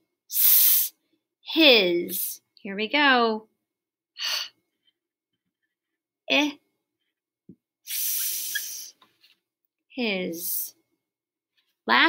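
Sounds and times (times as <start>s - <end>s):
marker hissing across whiteboard: 7.9s - 9.2s.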